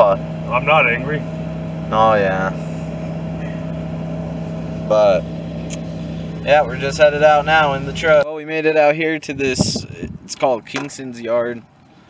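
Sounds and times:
pickup truck engine running: 0.0s - 8.2s, 9.3s - 10.7s.

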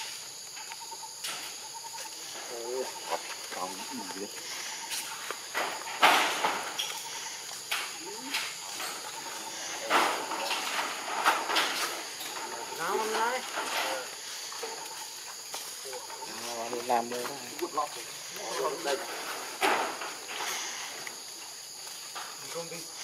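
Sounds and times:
sharp rustling noises: 0.0s - 23.0s.

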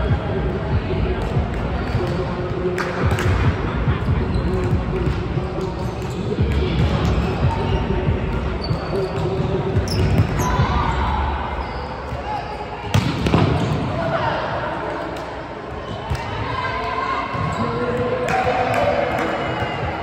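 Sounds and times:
players' voices: 0.0s - 20.0s
hands slapping volleyball: 2.8s - 3.4s.

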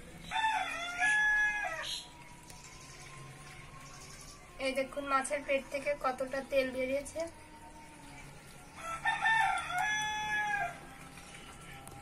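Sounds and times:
rooster crowing: 0.2s - 2.1s, 8.7s - 10.9s.

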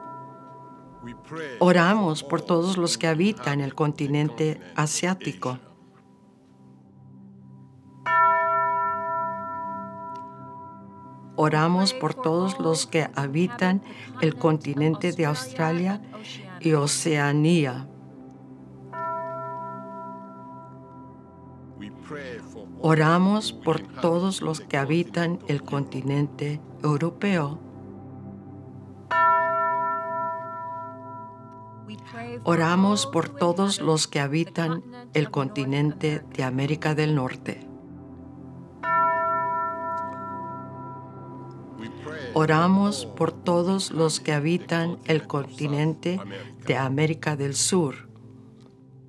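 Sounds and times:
tubular chime ringing: 8.0s - 11.9s, 29.1s - 34.8s, 38.8s - 47.0s.

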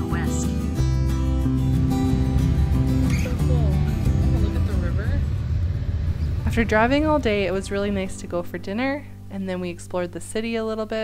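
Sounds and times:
background music: 0.0s - 11.0s
vehicle road rumble from inside: 2.6s - 8.8s.

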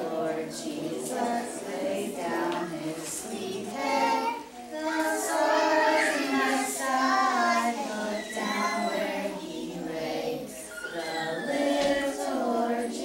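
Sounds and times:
children singing together: 0.0s - 13.0s.

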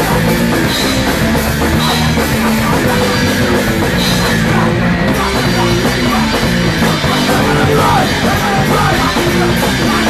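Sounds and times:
drum kit with cymbals: 0.0s - 10.0s
punk rock band playing live: 0.0s - 10.0s.

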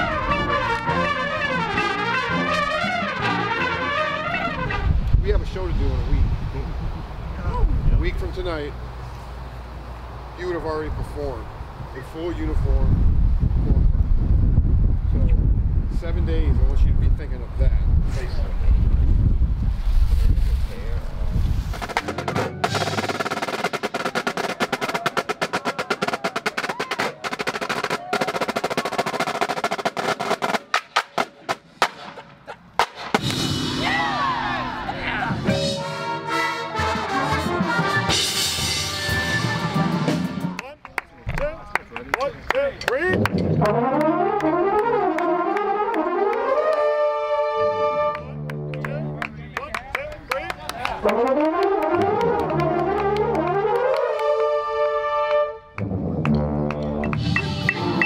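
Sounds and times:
brass section playing chords: 0.0s - 5.0s, 33.3s - 40.6s, 43.2s - 49.4s, 51.0s - 58.0s
drumline playing fast strokes: 0.0s - 5.8s, 21.6s - 40.8s, 50.1s - 54.7s, 55.8s - 58.0s.

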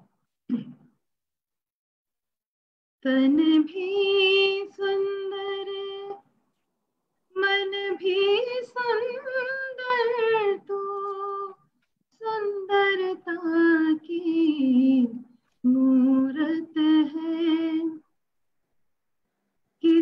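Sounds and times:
woman singing unaccompanied: 3.0s - 6.2s, 7.3s - 18.1s, 19.8s - 20.0s.

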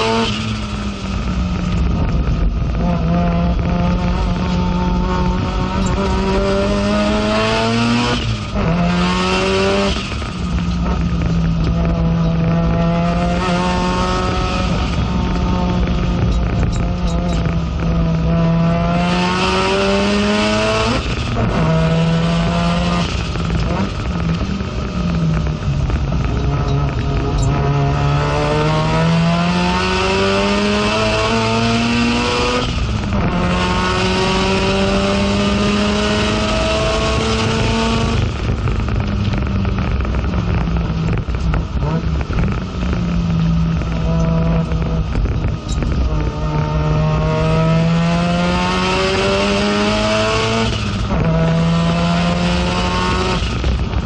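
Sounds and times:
race car engine accelerating: 0.0s - 54.0s.

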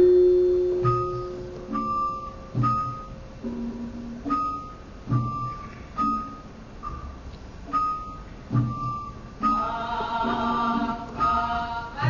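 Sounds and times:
gamelan struck notes: 0.0s - 11.6s.

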